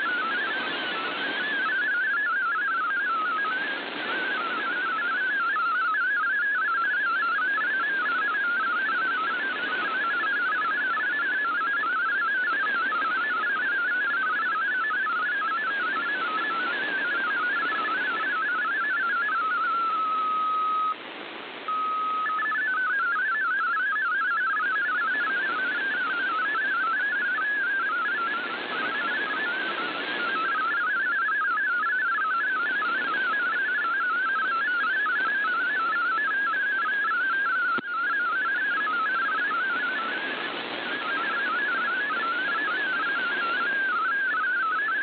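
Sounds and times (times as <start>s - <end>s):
radio static hiss: 0.0s - 45.0s
steady radio tone: 0.0s - 45.0s.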